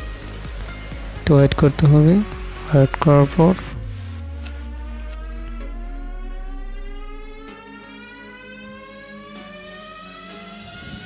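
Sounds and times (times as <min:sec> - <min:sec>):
low repeating pulse: 0:00.0 - 0:11.0
rising synthesized tone: 0:00.0 - 0:11.0.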